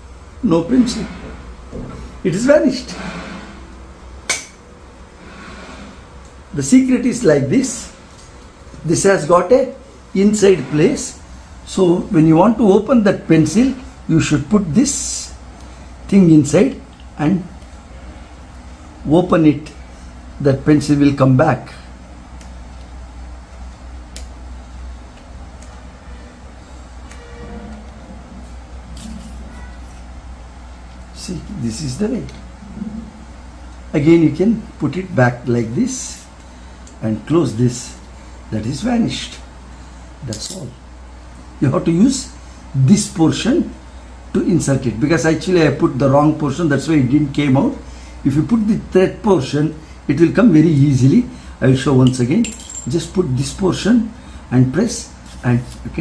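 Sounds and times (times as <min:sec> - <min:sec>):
low room hum: 0:00.0 - 0:56.0.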